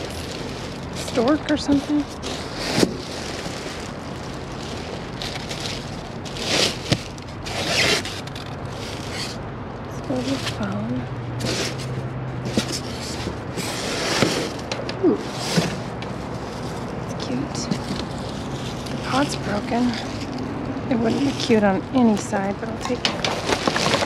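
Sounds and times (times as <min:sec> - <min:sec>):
plastic bags crinkling: 0:00.0 - 0:09.4, 0:21.0 - 0:24.0.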